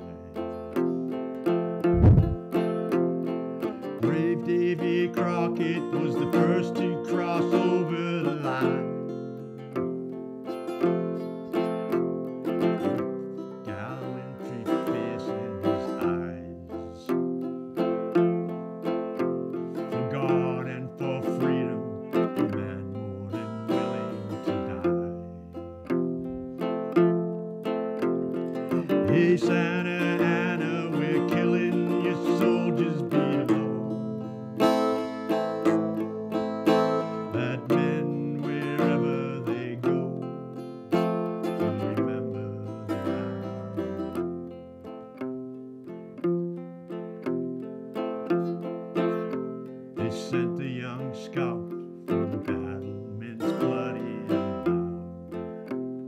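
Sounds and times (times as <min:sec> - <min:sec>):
acoustic guitar picking and strumming: 0:00.0 - 0:56.0
held wavering melody line: 0:01.8 - 0:02.4.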